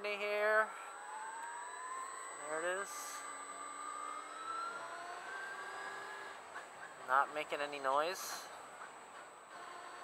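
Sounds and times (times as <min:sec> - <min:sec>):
electric motor whine: 0:09.5 - 0:10.0.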